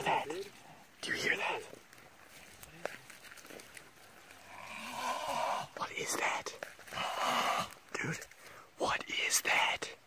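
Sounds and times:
drawn-out animal-like call: 4.3 - 5.8.

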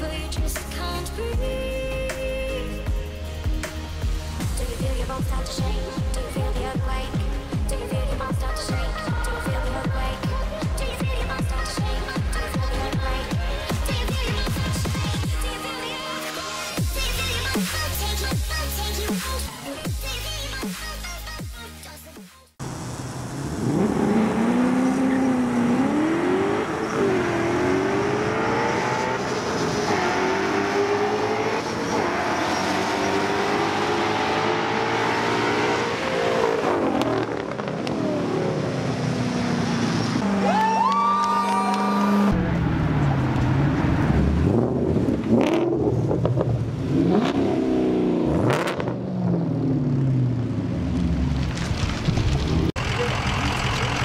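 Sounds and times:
car engines accelerating: 22.6 - 54.0.

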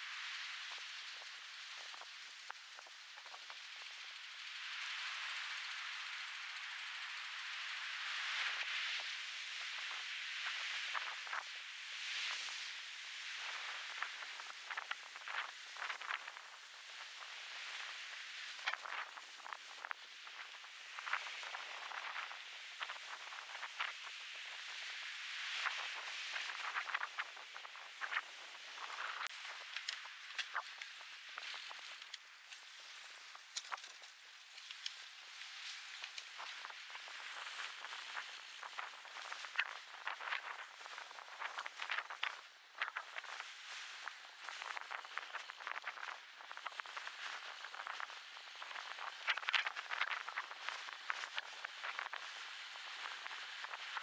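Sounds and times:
small crackles and ticks: 0.0 - 54.0
wind rustling pine branches: 0.0 - 54.0.

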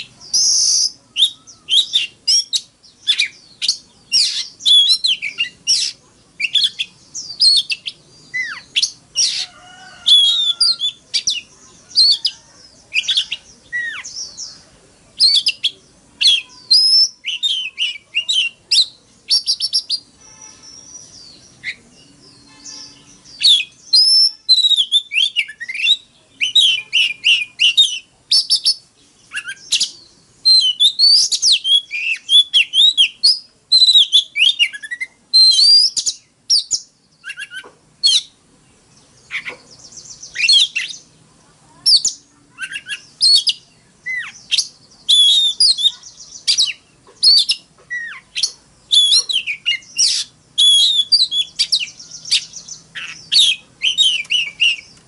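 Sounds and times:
bird singing whistled trills: 0.0 - 14.6, 15.2 - 41.1, 41.9 - 55.0.

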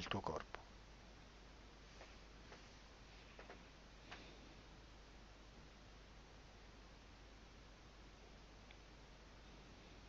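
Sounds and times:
faint clicks: 8.6 - 8.8.

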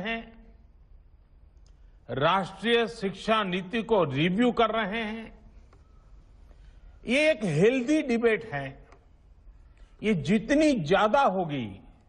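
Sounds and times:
faint low hum: 0.0 - 12.0
man speaking: 2.0 - 5.5, 7.0 - 9.0, 10.0 - 12.0.

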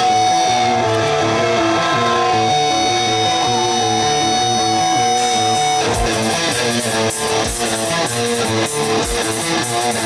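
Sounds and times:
guitar picking a riff: 0.0 - 10.0.

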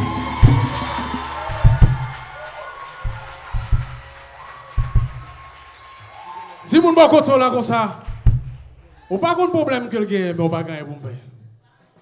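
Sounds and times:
live gospel band music: 0.0 - 5.5
low drum hits: 0.4 - 2.4, 3.0 - 4.2, 4.8 - 5.4, 8.0 - 8.9.

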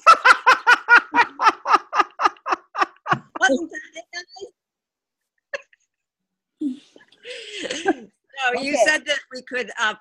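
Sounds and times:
person speaking: 6.6 - 10.0.

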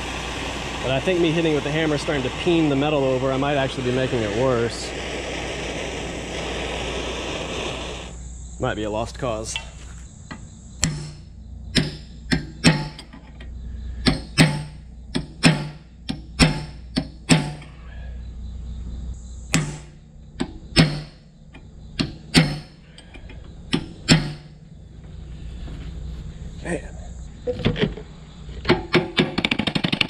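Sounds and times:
hammer striking metal: 10.8 - 13.1, 14.0 - 17.7, 19.5 - 21.2, 22.0 - 22.8, 23.8 - 24.6.

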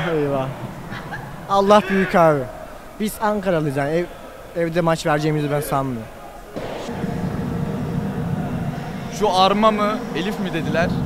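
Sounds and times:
low outdoor rumble: 6.6 - 11.0.

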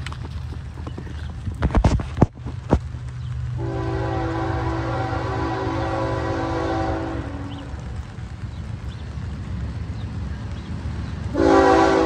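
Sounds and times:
locomotive air horn blast: 3.6 - 7.7, 11.3 - 12.0.

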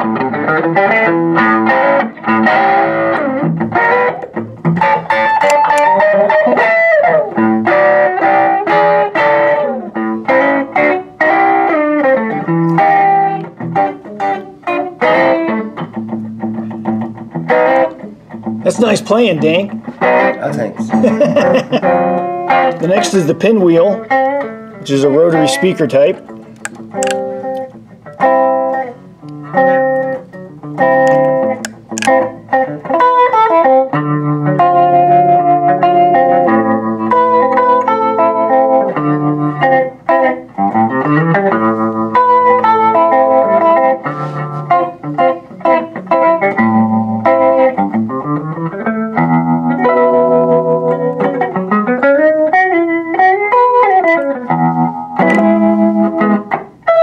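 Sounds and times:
electric guitar chords: 0.0 - 57.0.

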